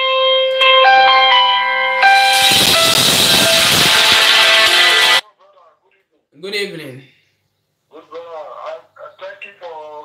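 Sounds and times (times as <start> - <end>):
phone ringtone melody: 0.0 - 5.2.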